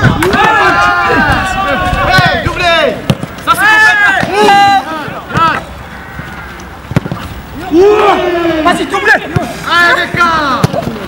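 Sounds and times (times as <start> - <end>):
men shouting and cheering: 0.0 - 11.0.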